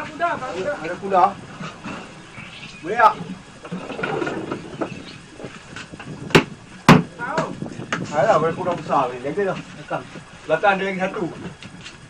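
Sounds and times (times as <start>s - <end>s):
sharp knocks: 6.3s - 7.5s.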